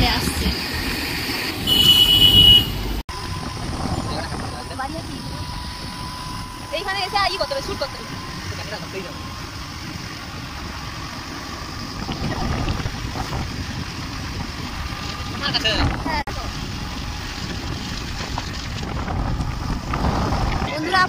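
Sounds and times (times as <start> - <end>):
vehicle road noise: 0.0 - 21.0
wind buffeting microphone: 0.0 - 21.0
voices: 3.9 - 9.4.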